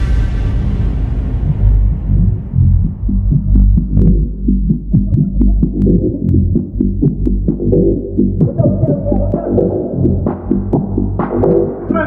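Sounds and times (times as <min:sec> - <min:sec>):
deep pulsing bass line: 0:00.0 - 0:12.0
sharp ticking percussion: 0:01.6 - 0:12.0.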